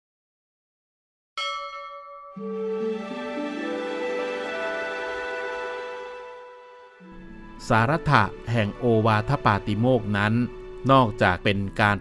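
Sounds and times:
bell-like chime ringing: 0:01.4 - 0:07.0
background music: 0:02.3 - 0:12.0.

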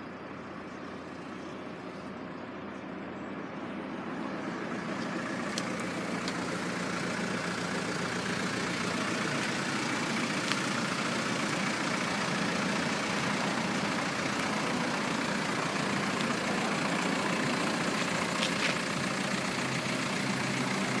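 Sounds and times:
vehicle rumble and hiss: 0:00.0 - 0:21.0.

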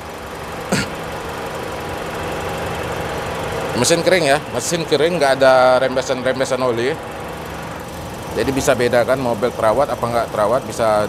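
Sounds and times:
air conditioning running: 0:00.0 - 0:11.0
car engine idling: 0:00.0 - 0:11.0.

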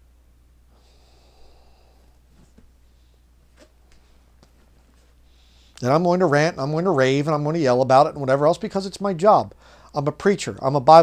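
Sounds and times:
low steady hum: 0:00.0 - 0:11.0
man breathing in through nose: 0:00.7 - 0:02.2, 0:05.2 - 0:05.8, 0:09.6 - 0:09.9.

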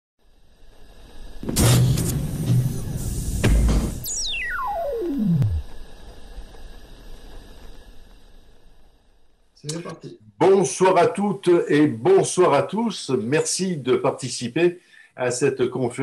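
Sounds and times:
loud synth hits: 0:01.4 - 0:05.6
downward pitch sweep: 0:04.0 - 0:05.7.

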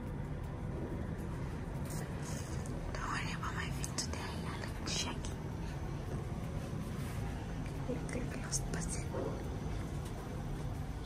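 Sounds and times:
steady low hum: 0:00.0 - 0:11.0
person whispering: 0:01.9 - 0:05.8, 0:07.7 - 0:09.5.

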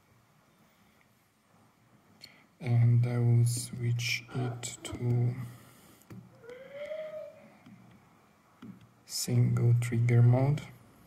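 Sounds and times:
animal call: 0:06.3 - 0:07.6.

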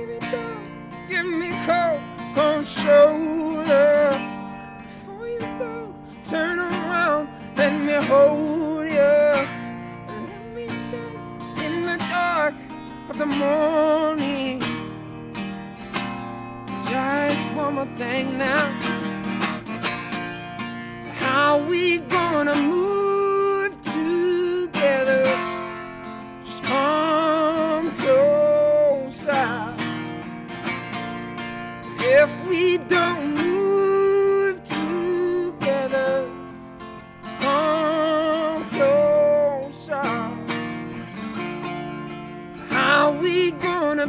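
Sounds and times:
man singing with vibrato: 0:00.0 - 0:44.0
strummed acoustic guitar: 0:00.0 - 0:44.0.

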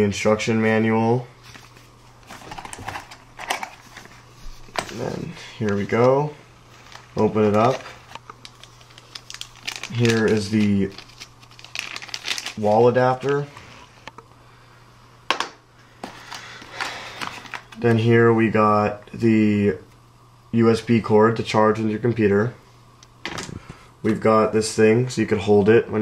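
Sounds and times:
faint steady hum: 0:00.0 - 0:26.0
cardboard packaging rustling: 0:01.4 - 0:13.7, 0:16.0 - 0:17.8.

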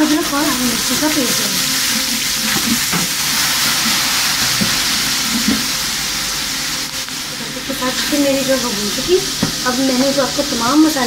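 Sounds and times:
hot oil sizzling in a pot: 0:00.0 - 0:11.0.

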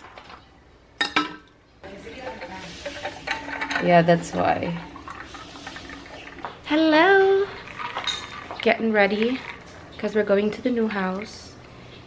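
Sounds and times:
water pouring into metal flask: 0:02.3 - 0:06.5.

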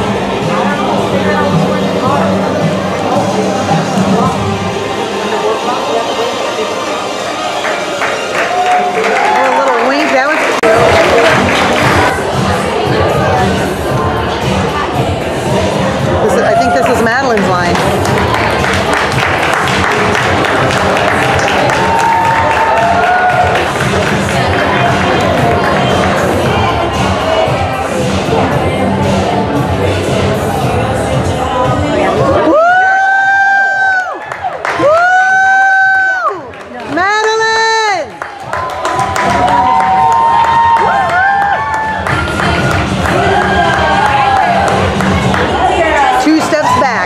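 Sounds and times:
background music: 0:00.0 - 0:47.0
crowd voices: 0:00.0 - 0:47.0
audience clapping and cheering: 0:07.3 - 0:12.2, 0:16.2 - 0:27.6, 0:32.3 - 0:47.0
spectators calling woo: 0:32.2 - 0:36.5, 0:45.6 - 0:47.0
wavering whoop: 0:32.4 - 0:36.5, 0:39.1 - 0:42.0.

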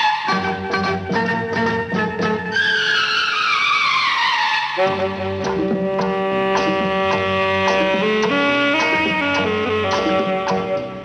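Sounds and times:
film song music: 0:00.0 - 0:11.0.

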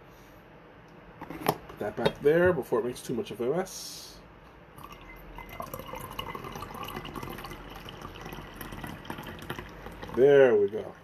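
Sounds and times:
tea trickling into a cup: 0:04.8 - 0:11.0.

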